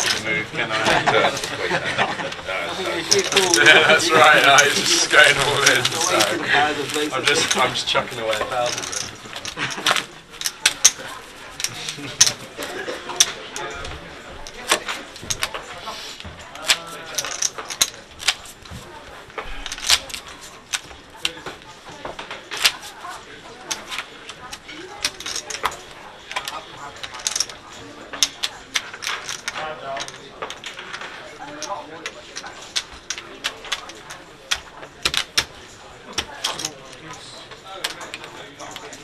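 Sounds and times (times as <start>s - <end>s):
poker chips clicking: 0.0s - 1.6s, 2.3s - 39.0s
faint background talk: 0.0s - 39.0s.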